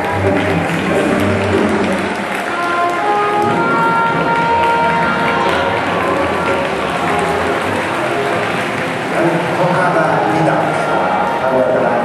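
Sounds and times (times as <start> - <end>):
audience applause: 0.0 - 11.8
salsa dance music: 0.0 - 12.0.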